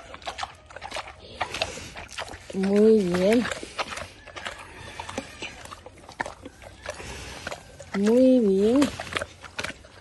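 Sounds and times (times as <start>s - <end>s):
pigs smacking and chewing: 0.0s - 10.0s.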